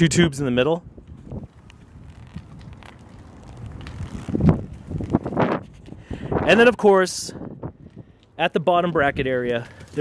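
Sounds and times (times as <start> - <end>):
wind buffeting microphone: 0.3 - 8.4
bike tyres rumbling on concrete: 0.9 - 6.7, 8.7 - 10.0.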